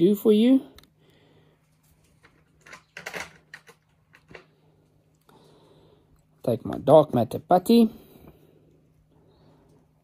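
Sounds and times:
fishing tackle clicks and rustles: 0:01.7 - 0:04.5.

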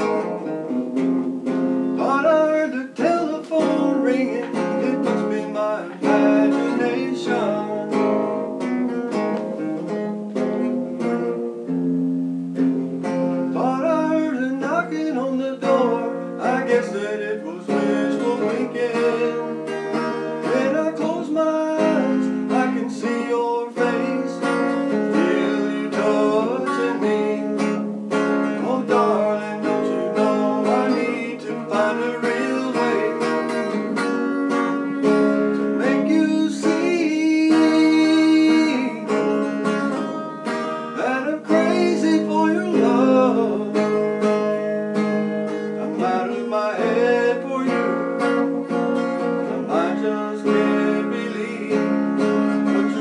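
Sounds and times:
man singing country song: 0:00.0 - 0:00.8, 0:01.4 - 0:10.7, 0:13.0 - 0:53.0
strummed guitar: 0:00.0 - 0:53.0.

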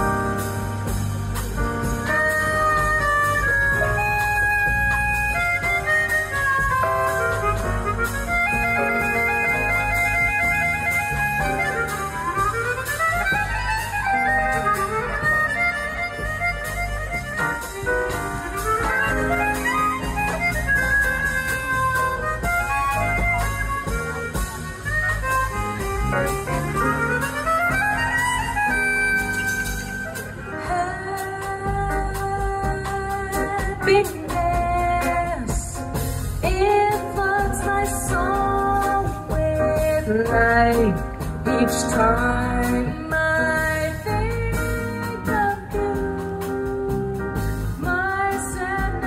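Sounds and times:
chromatic harmonica jazz melody: 0:00.0 - 0:49.0
drums: 0:00.0 - 0:49.0
electric bass: 0:00.0 - 0:49.0.

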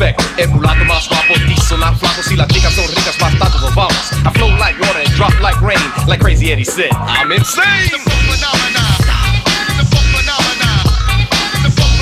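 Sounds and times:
dance track with vocals: 0:00.0 - 0:12.0.

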